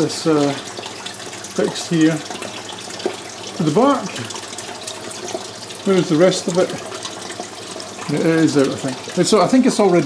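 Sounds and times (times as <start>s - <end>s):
water pouring into aquarium: 0.0s - 10.0s.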